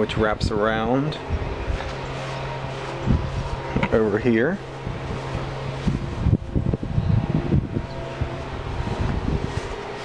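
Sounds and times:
low mechanical hum: 0.0 - 10.0
wind rumble on microphone: 0.0 - 10.0.

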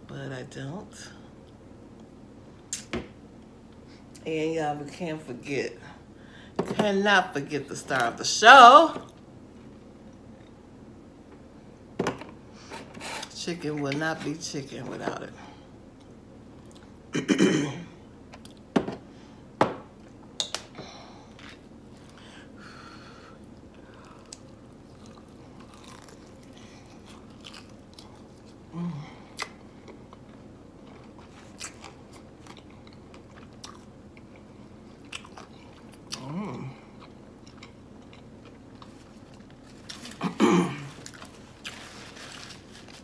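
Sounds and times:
fried chicken chewing: 23.9 - 28.6.

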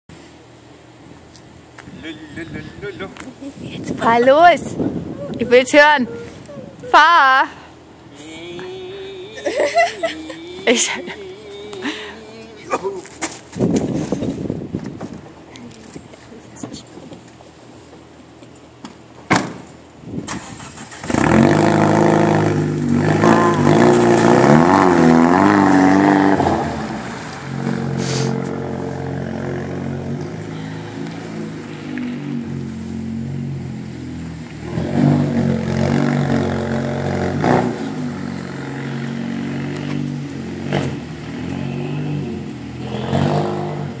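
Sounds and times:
race car engine revving: 20.3 - 44.0.

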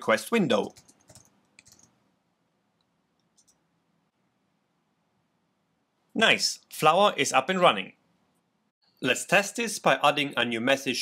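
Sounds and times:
keyboard clicks: 0.6 - 2.0.

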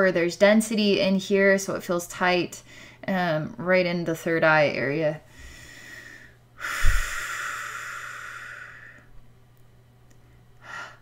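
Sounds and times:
puff of air on microphone: 6.7 - 7.3.

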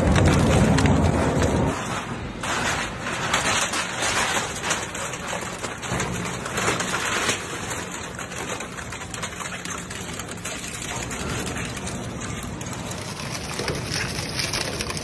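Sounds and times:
shredder crushing a panel: 0.0 - 15.0.

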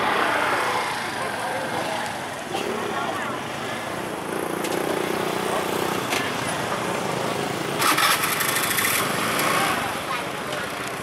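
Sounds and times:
crowd chatter: 0.0 - 11.0
small motorcycle engine running: 3.6 - 11.0.

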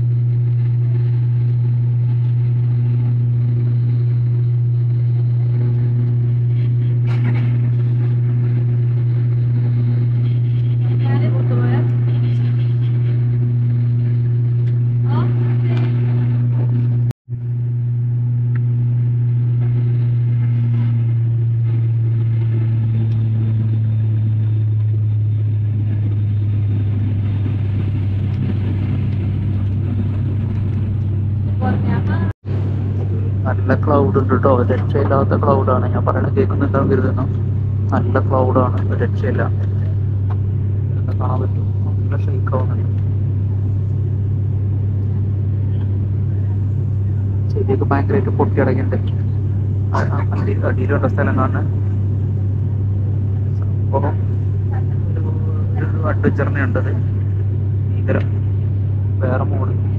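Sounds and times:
airplane engine drone in cabin: 0.0 - 59.9
faint pulsing hum: 0.0 - 59.9.

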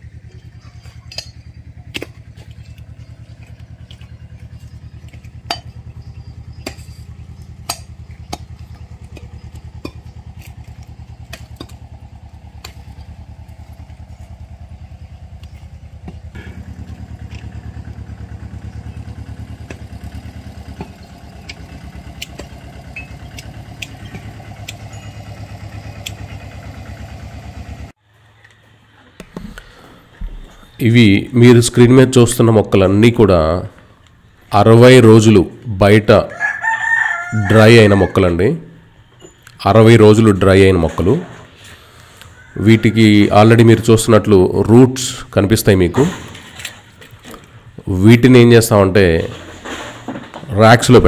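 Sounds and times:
small engine running: 0.0 - 28.0.

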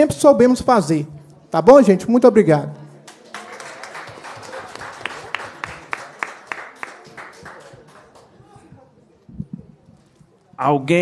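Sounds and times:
rhythmic louder claps: 3.1 - 8.4
audience applauding: 3.1 - 8.5.

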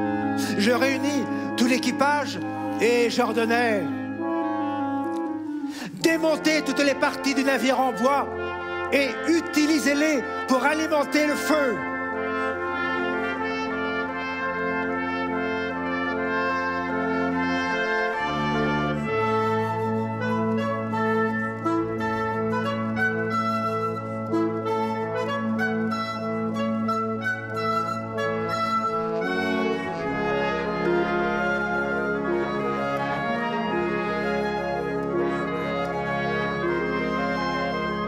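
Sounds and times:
symphony orchestra with brass: 0.0 - 38.0.

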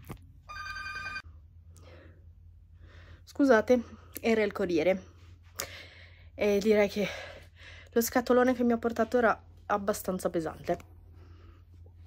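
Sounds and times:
electronic ringing tone: 0.5 - 1.3
faint breaths: 5.0 - 6.4.

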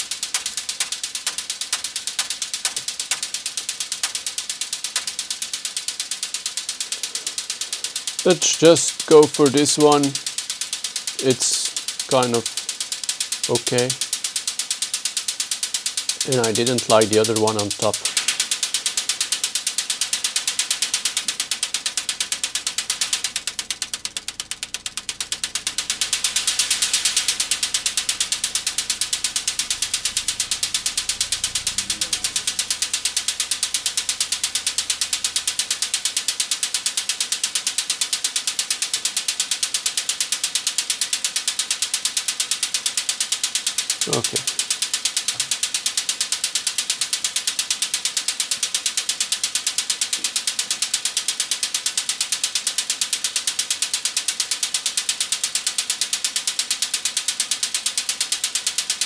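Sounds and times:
electronic hi-hat loop: 0.0 - 59.0.

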